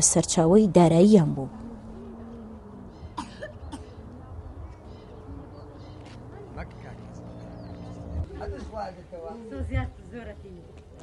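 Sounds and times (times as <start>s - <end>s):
low background rumble: 0.0s - 8.3s
person coughing: 3.2s - 4.0s.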